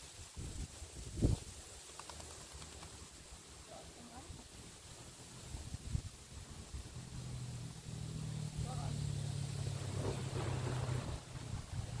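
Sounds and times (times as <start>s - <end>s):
low motor hum: 6.4s - 12.0s
dog splashing into water: 9.6s - 12.0s.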